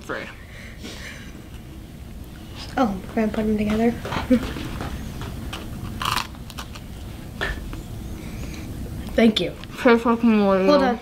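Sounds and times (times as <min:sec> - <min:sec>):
mouth and handling noises: 0:02.2 - 0:09.8
person chewing cookies: 0:04.6 - 0:07.8.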